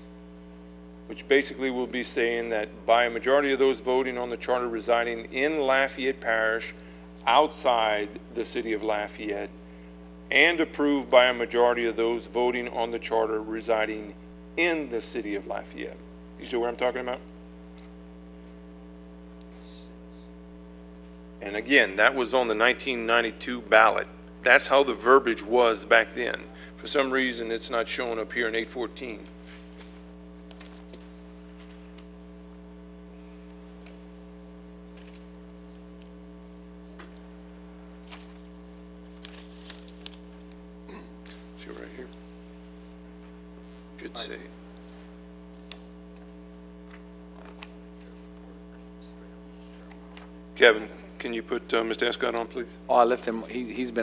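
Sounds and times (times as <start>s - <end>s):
electrical mains hum: 0.0s - 54.0s.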